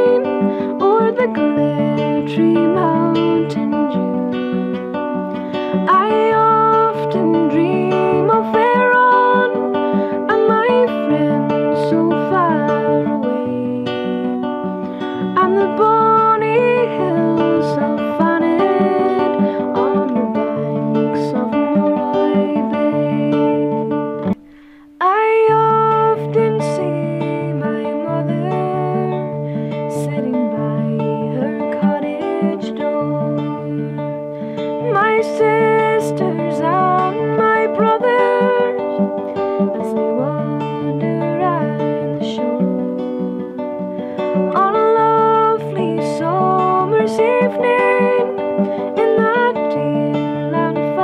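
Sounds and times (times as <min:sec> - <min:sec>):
acoustic guitar folk song: 0:00.0 - 0:51.0
woman singing: 0:00.0 - 0:51.0.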